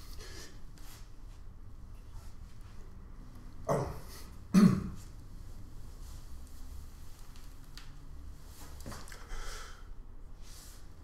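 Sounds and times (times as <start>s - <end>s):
man clearing his throat: 3.7s - 5.0s.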